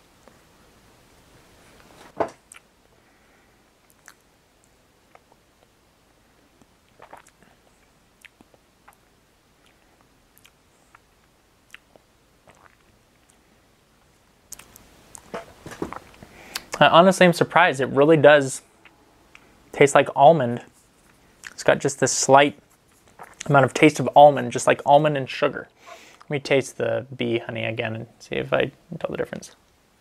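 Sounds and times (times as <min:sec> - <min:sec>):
mouth clicks and smacks chewing: 0:03.9 - 0:05.7, 0:06.6 - 0:07.5, 0:08.2 - 0:13.4, 0:14.5 - 0:15.3, 0:23.0 - 0:23.5.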